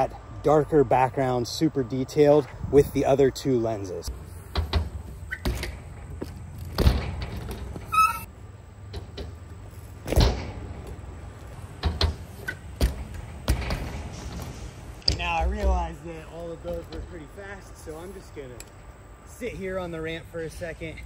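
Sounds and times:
bike tyres rolling on concrete: 3.9s - 21.0s
bike wheels thudding on ramp: 4.4s - 8.3s, 9.0s - 11.0s, 11.6s - 16.0s.

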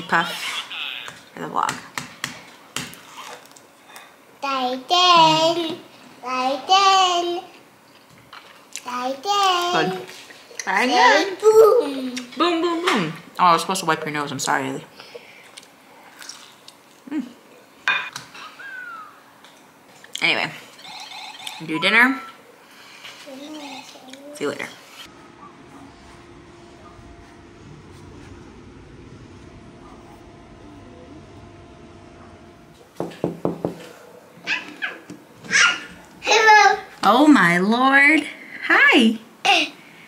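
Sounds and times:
soft closed-mouth hum: 22.2s - 33.1s
short falling whine: 25.1s - 32.8s.

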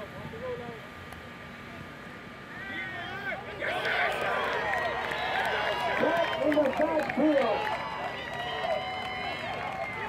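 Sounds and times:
men calling out and cheering: 2.5s - 10.0s.

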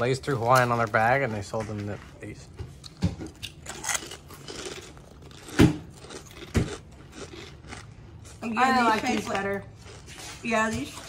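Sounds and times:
potato chips crunching: 3.3s - 10.4s.

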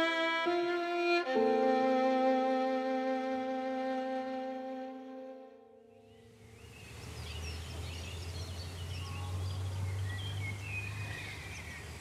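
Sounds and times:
small birds chirping: 6.0s - 12.0s.

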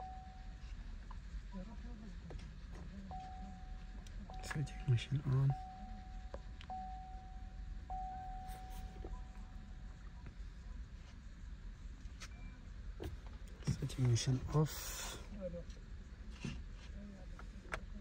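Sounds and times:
car warning chime: 0.0s - 0.6s, 3.1s - 9.8s
low hum: 0.0s - 18.0s.

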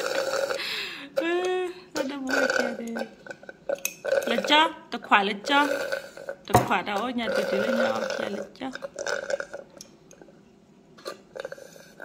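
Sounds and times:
sipping through metal straws: 7.2s - 9.6s.

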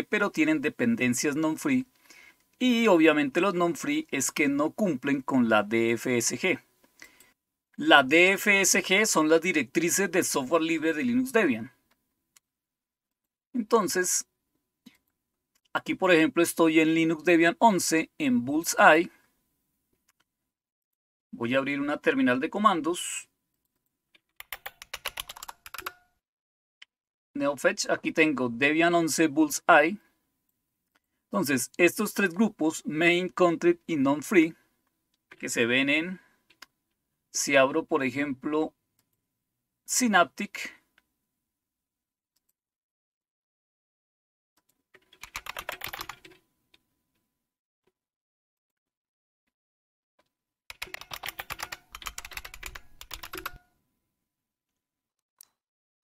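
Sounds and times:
computer keyboard typing: 24.2s - 26.1s, 45.0s - 46.4s, 50.7s - 53.7s.

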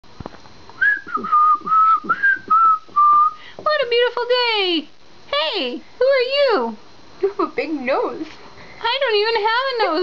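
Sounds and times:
person whistling a tune: 0.8s - 3.4s.

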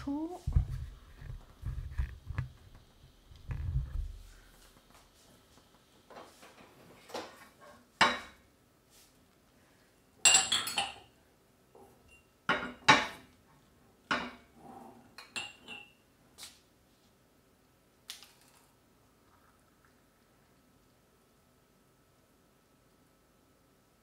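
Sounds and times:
glass jars clinking on counter: 10.2s - 11.1s, 15.2s - 16.0s.

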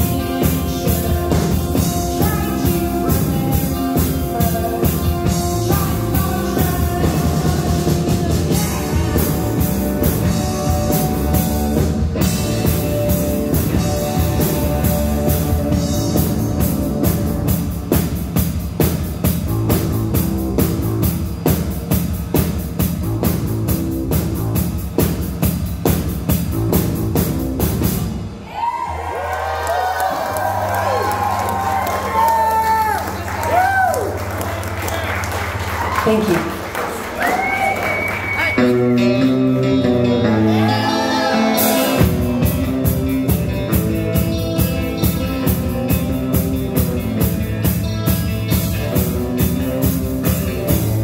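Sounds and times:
live rock band playing: 0.0s - 28.4s, 29.6s - 51.0s
audience whooping: 28.4s - 38.9s, 40.2s - 42.1s.

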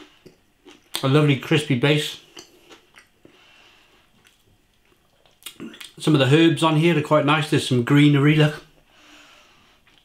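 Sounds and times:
person chewing crispy crust: 0.0s - 1.3s, 2.1s - 6.0s
short breath: 8.9s - 9.9s.

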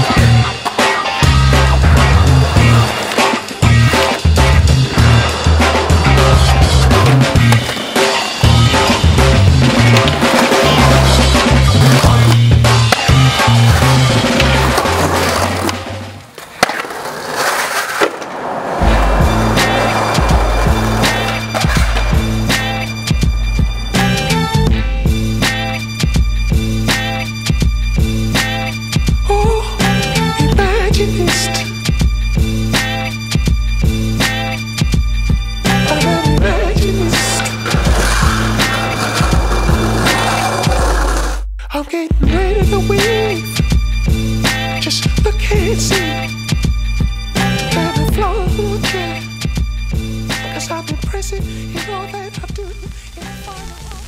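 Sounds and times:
music with bass line: 0.0s - 7.7s, 8.4s - 15.5s, 18.8s - 54.0s
skateboard wheels rolling: 0.0s - 26.2s, 35.6s - 41.4s
skateboard pop: 0.6s - 8.9s, 12.2s - 23.3s, 37.1s - 41.4s
skateboard knock: 18.0s - 24.1s.

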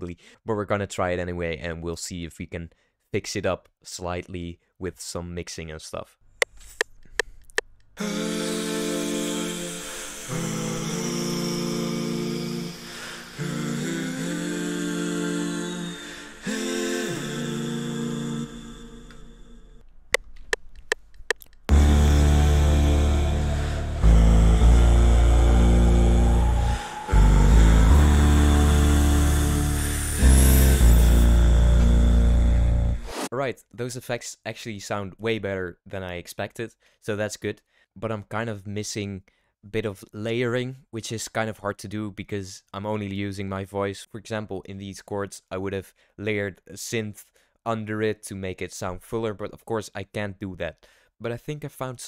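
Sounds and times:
voiced rising sweep: 8.0s - 19.6s, 21.7s - 33.3s
deep vocal bass: 8.0s - 19.8s, 21.7s - 33.2s
hummed vocal chords: 8.0s - 19.8s, 21.7s - 33.2s.

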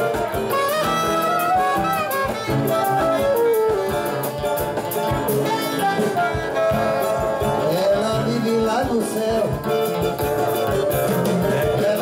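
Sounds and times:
flute melody: 0.0s - 8.4s
acoustic guitar: 0.0s - 12.0s
keyboard: 0.0s - 12.0s
percussion beat: 0.0s - 12.0s
soprano saxophone: 0.4s - 7.7s.

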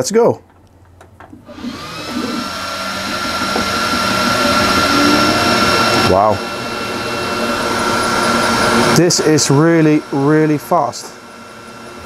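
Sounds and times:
fan hiss with high whine: 1.5s - 12.0s
brief pitched sweep: 2.1s - 7.7s.

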